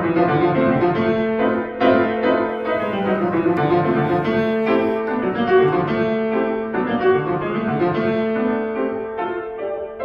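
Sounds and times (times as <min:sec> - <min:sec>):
solo piano playing chords: 0:00.5 - 0:10.0.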